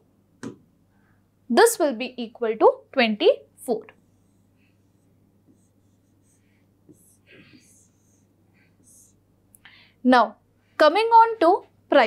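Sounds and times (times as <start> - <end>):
low steady hum: 0.0 - 12.0
pen scratching on touchscreen: 3.9 - 9.2.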